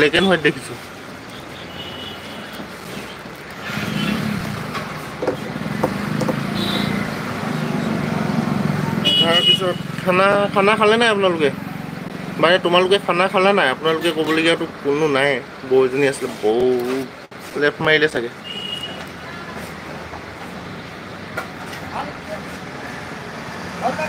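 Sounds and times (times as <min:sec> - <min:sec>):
vehicle engine humming: 0:00.0 - 0:17.4.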